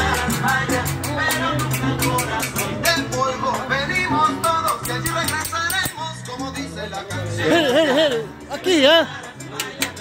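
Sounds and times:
latin dance music with singing: 0.0 - 10.0.

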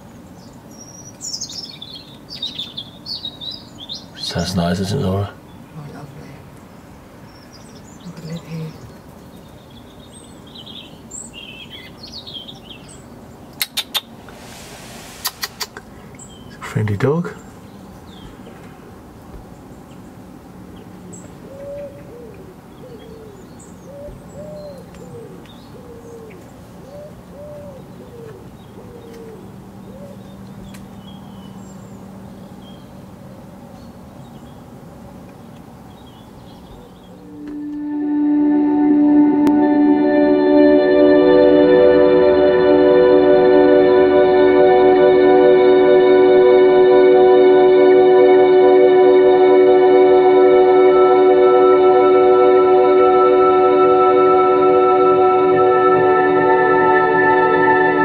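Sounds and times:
small birds chirping: 0.0 - 14.2, 15.2 - 18.7, 19.3 - 37.4
bird cooing: 21.4 - 30.3
guitar music: 37.3 - 58.0.

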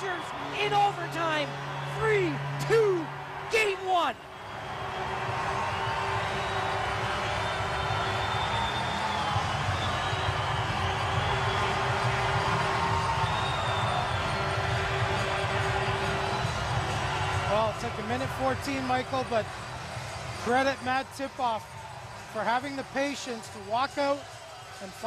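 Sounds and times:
crowd cheering and clapping: 0.0 - 25.0
music over sound system: 5.3 - 21.1.

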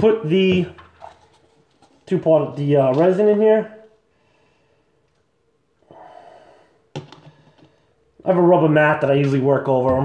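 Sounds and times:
soft breath: 4.1 - 5.0.

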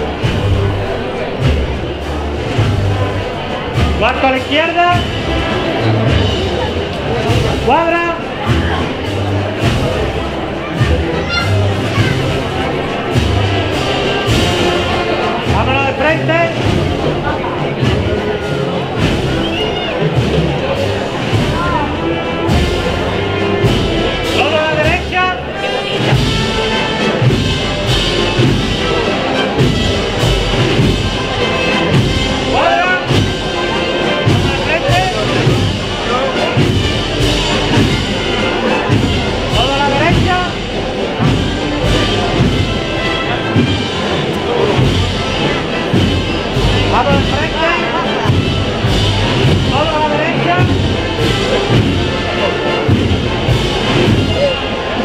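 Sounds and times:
drum beats: 0.0 - 55.0
wind band playing a march: 0.0 - 55.0.

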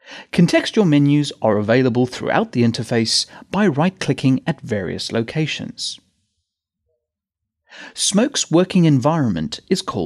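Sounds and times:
man's in-breath: 0.0 - 0.3, 7.7 - 8.0
man speaking: 0.3 - 6.0, 7.8 - 10.0.

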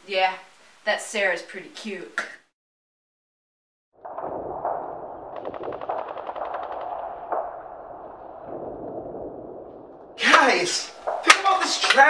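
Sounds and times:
automatic gunfire burst: 5.3 - 7.5.

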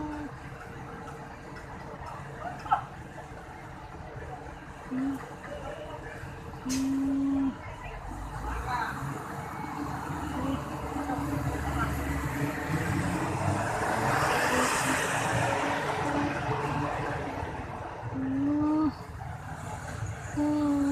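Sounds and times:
person humming: 0.0 - 0.3, 4.9 - 5.3, 6.7 - 7.6, 18.1 - 19.0, 20.4 - 20.9
cars and motorcycles passing: 0.0 - 20.9.

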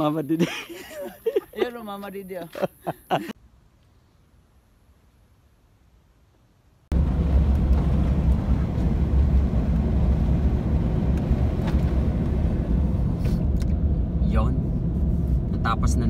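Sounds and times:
car driving interior rumble: 6.9 - 16.0.

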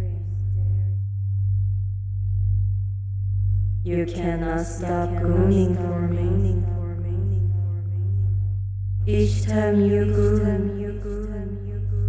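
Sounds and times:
pulsing synthesized sine-tone drone: 0.0 - 12.0.

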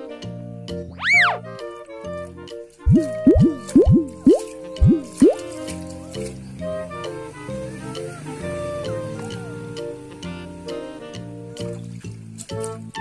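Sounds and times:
children's background music: 0.0 - 13.0
cartoon boing sounds: 2.9 - 5.4.

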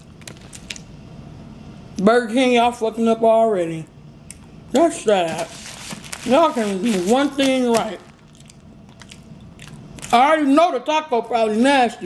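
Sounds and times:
faint room noise: 0.0 - 12.0
foil and paper wrappers rustling: 5.1 - 9.2.

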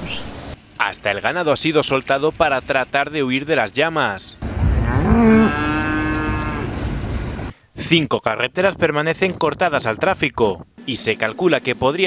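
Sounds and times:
low rumble: 4.4 - 7.5
cow mooing: 4.5 - 6.9.

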